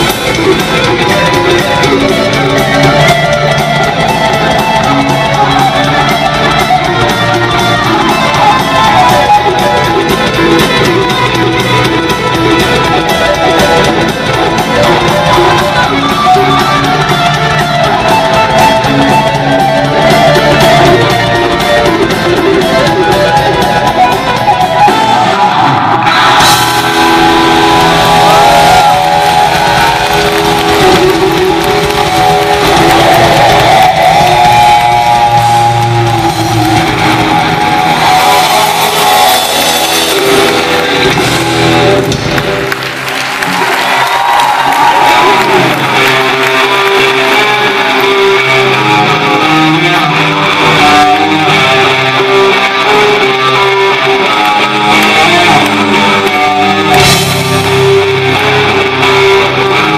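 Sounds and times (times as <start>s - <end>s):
live rock band: 0.0s - 59.9s
loud electric guitar: 0.0s - 59.9s.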